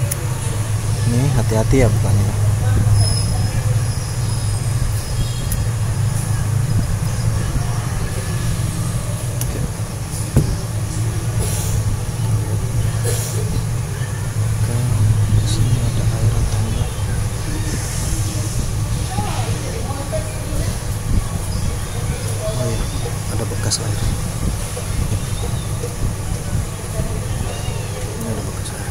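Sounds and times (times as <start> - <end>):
low background hum: 0.0 - 28.9.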